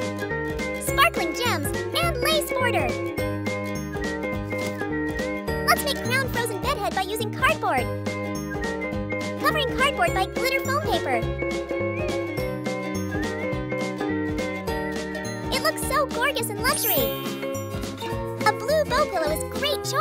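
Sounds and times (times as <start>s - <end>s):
upbeat children's music: 0.0s - 20.0s
voice-like melodic glides: 16.6s - 18.4s
bell-like tones: 16.7s - 18.3s.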